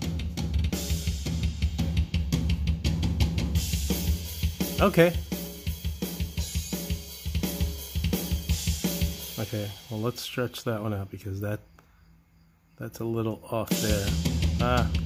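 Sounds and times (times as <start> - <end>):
fast double-kick drum pattern: 0.0 - 9.9, 13.7 - 15.0.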